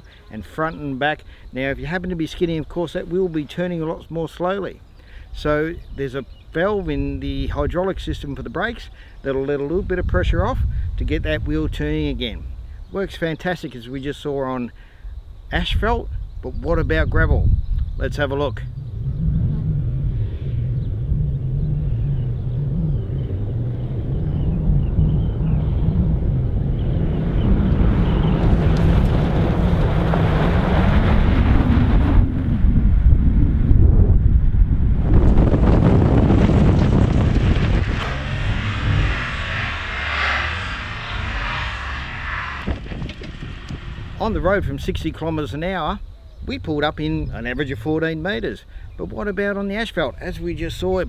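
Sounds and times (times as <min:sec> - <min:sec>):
wind on microphone: 0:05.2 - 0:13.2, 0:15.1 - 0:51.0
car engine: 0:18.6 - 0:32.8, 0:35.3 - 0:44.6
tyres on gravel: 0:27.6 - 0:31.6, 0:35.1 - 0:45.8
hard braking with abs: 0:35.3 - 0:44.4.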